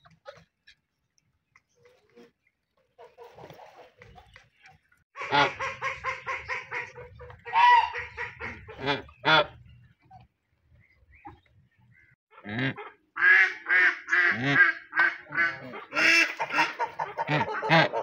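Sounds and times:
geese honking: 5.2s - 9.7s, 11.1s - 18.0s.

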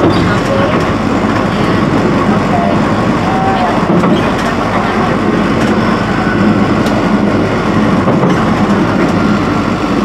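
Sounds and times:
tram running along track: 0.0s - 10.0s.

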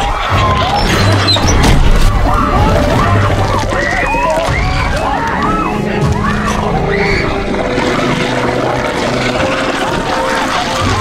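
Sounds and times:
people screaming: 0.0s - 11.0s
low rumbling drone: 1.7s - 11.0s.

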